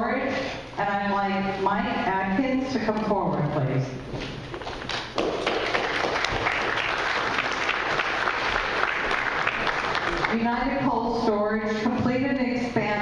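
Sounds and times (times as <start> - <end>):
audience applauding: 4.9 - 10.4.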